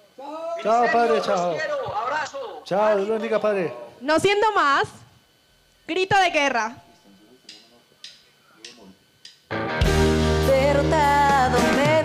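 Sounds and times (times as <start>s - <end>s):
drumstick clicks: 7.5s - 9.5s
live band playing worship song: 9.6s - 12.0s.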